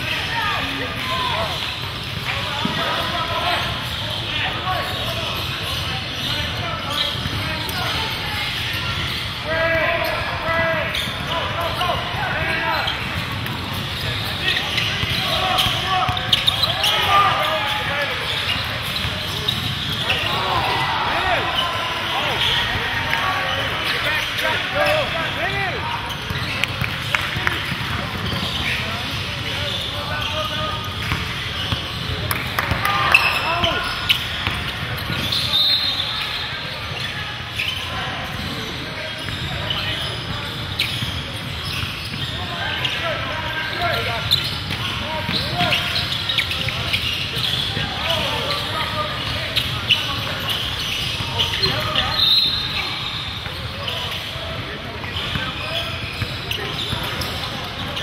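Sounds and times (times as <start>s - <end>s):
sneakers squeaking: 0.0s - 58.0s.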